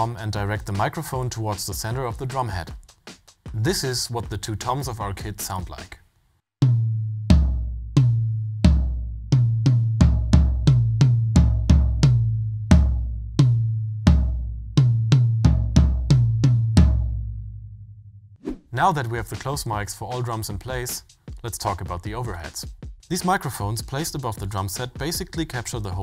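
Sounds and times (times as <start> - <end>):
toms struck with sticks: 1.9 - 3.8, 6.6 - 17.1.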